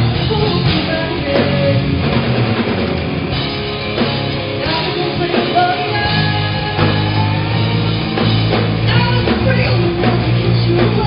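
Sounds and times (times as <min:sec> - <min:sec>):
drum kit: 0:00.0 - 0:11.0
electric guitars: 0:00.0 - 0:11.0.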